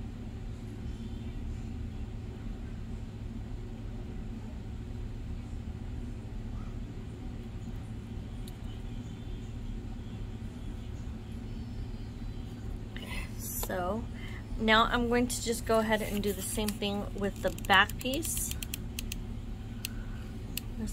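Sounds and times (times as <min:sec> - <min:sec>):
low machinery hum: 0:00.0 - 0:20.9.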